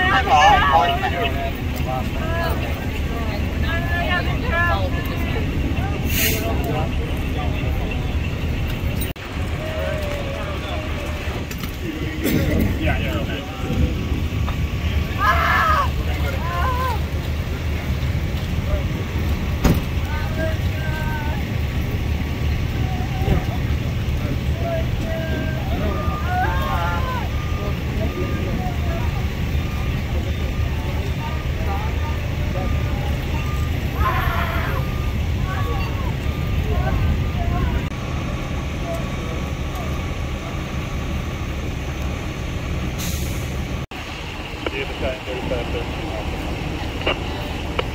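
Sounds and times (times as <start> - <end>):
engines idling: 0.0 - 47.9
voices talking: 0.0 - 47.9.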